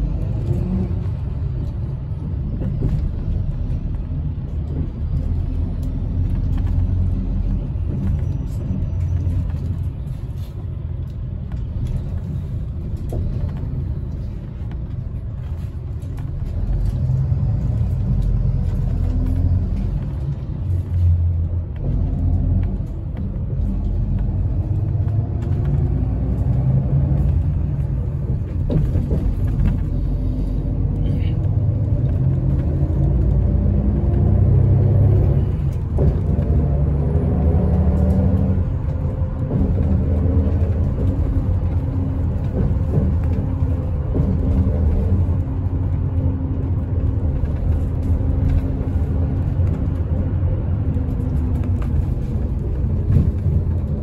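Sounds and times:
bus engine and tyre rumble: 0.0s - 54.0s.

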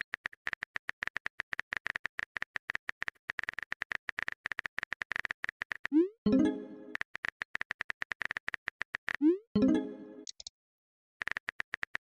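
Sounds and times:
keyboard typing clicks: 7.6s - 10.5s.

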